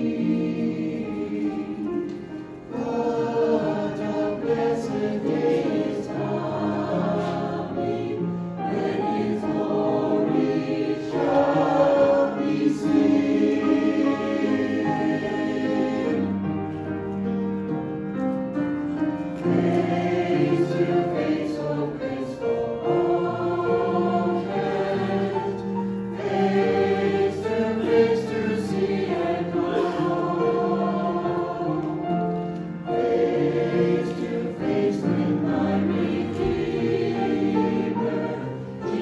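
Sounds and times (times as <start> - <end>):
church choir singing a hymn: 0.0 - 17.4, 18.1 - 39.0.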